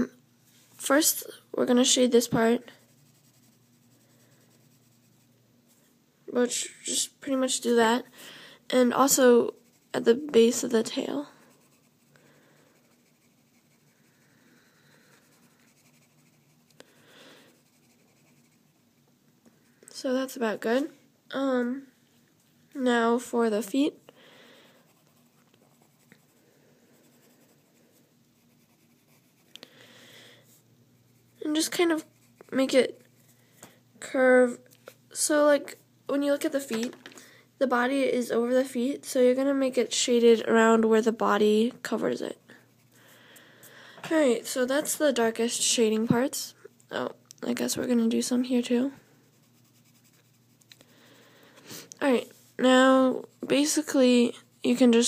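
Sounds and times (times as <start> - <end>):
pencil scratching on paper: 1.8 - 5.4, 9.0 - 16.7, 17.5 - 18.8, 24.8 - 29.5, 31.0 - 33.3, 49.0 - 50.7.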